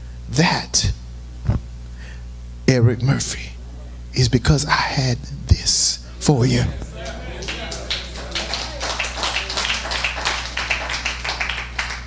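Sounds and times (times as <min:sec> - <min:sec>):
voices calling out: 0:06.0 - 0:11.6
congregation applauding: 0:06.9 - 0:12.0.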